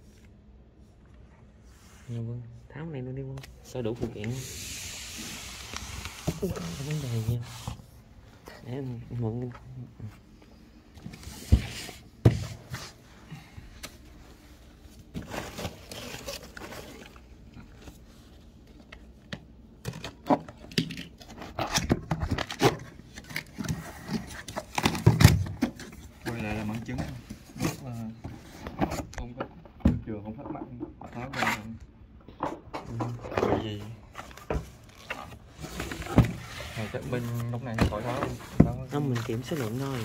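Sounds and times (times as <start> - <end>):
cardboard scraping: 4.1 - 8.0, 33.7 - 40.0
plastic wrapping rustling: 15.1 - 18.3, 34.1 - 40.0.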